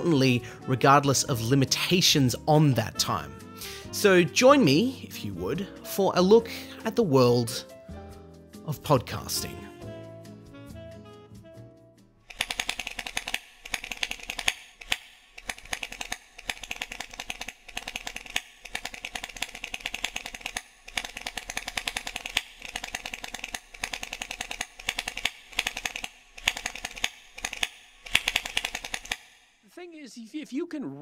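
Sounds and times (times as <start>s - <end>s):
keyboard typing clicks: 12.3s - 29.4s.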